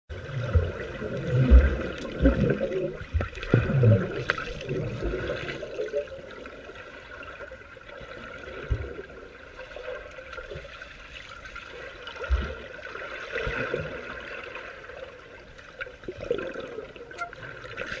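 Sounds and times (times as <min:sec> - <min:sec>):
low thumps underwater: 0:00.1 - 0:05.5
underwater rushing and bubbling: 0:00.1 - 0:18.0.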